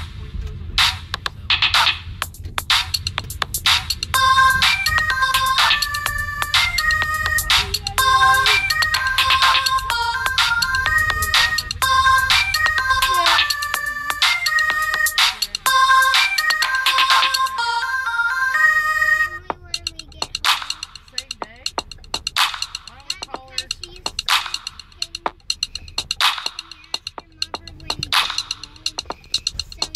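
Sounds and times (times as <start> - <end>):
drum pattern: 0.0 - 17.7, 19.4 - 29.9
low bass: 0.0 - 17.9, 18.8 - 29.9
high synth notes: 2.6 - 29.9.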